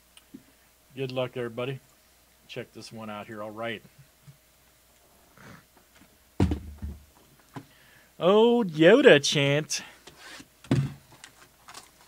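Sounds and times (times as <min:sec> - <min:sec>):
box thump: 0:06.4 - 0:07.1, 0:10.7 - 0:11.0.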